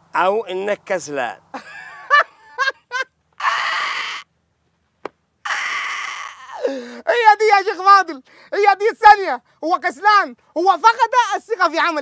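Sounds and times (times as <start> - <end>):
man laughing hard: 1.5 - 4.2.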